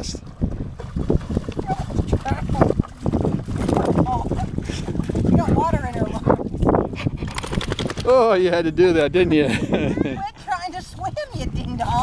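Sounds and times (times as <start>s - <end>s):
dog splashing through water: 0.7s - 8.2s.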